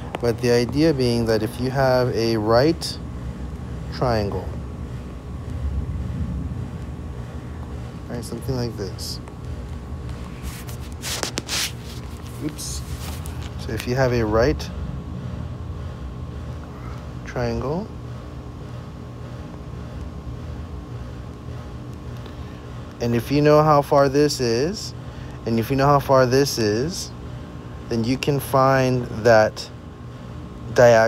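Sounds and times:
light hum: 0.0s - 31.0s
low room noise rumble: 0.0s - 31.0s.

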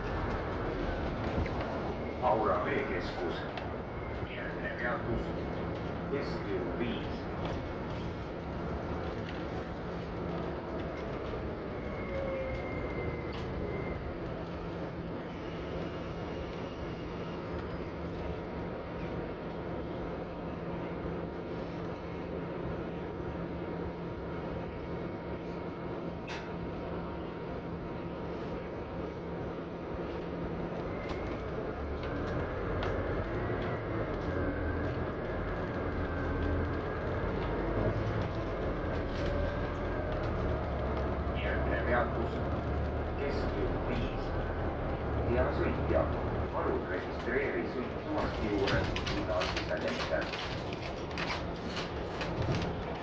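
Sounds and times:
road noise: 0.0s - 24.9s, 26.2s - 53.0s
bus engine drone: 0.0s - 53.0s.

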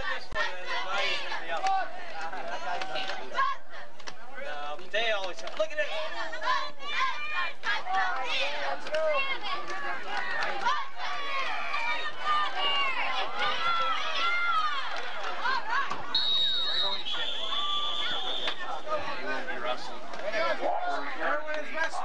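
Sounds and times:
spectators calling and talking: 0.0s - 22.0s
referee whistle blasts: 16.1s - 18.7s.

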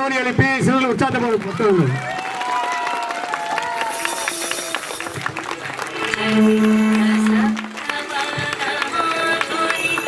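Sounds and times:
audience applauding: 0.0s - 10.0s
music playing: 3.7s - 10.0s.

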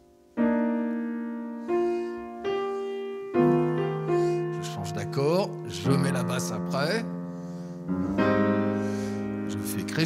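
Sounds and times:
piano playing jazz chords: 0.0s - 10.0s.

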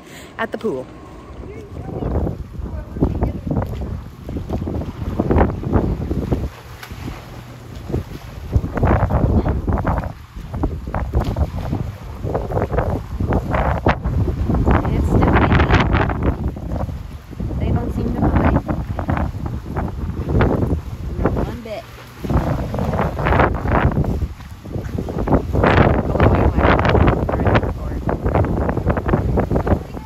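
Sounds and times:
pool water splashing: 0.0s - 30.0s
wind buffeting microphone: 1.2s - 30.0s.

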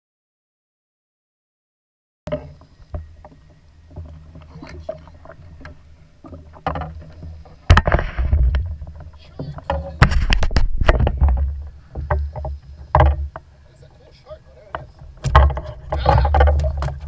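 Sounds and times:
low rumble of wind and water: 2.3s - 17.0s
knocks against plastic kayak: 14.8s - 17.0s.

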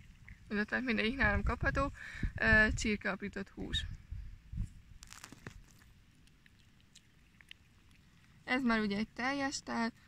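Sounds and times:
sharp clicks and crunches: 5.0s - 6.4s.

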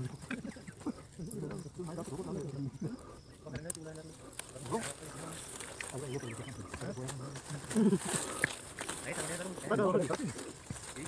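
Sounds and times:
narration voice: 1.2s - 7.6s
sharp clicks: 3.5s - 4.5s.

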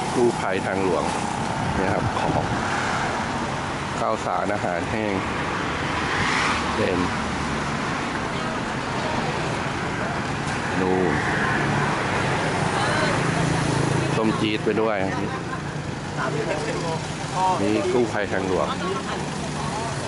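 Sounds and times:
traffic noise: 0.0s - 20.0s
voices talking: 0.0s - 20.0s.

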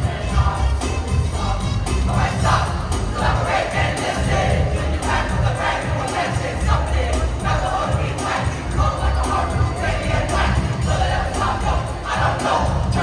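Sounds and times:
crowd singing and shouting: 0.0s - 13.0s
music with heavy bass: 0.0s - 13.0s.

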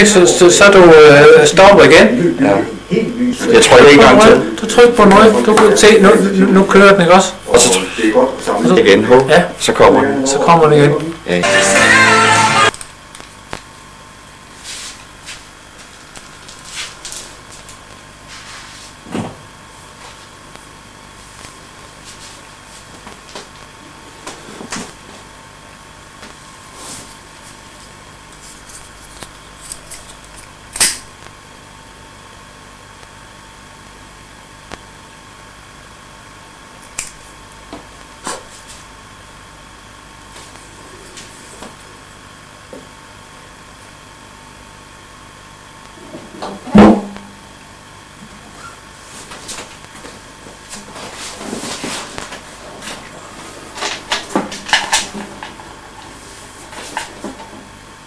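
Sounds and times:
electrical hum with high tone: 0.0s - 58.0s.

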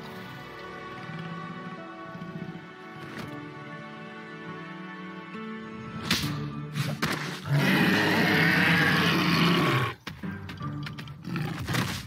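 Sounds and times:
dinosaur roaring: 7.4s - 10.0s.

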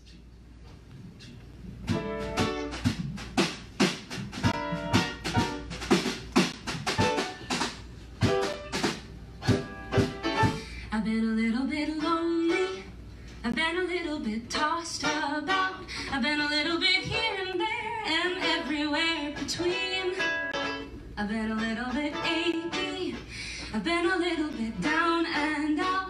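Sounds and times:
ukulele strumming chords: 1.8s - 3.3s, 4.3s - 10.8s, 11.4s - 12.9s, 13.6s - 26.0s
band accompanying: 1.8s - 10.8s.

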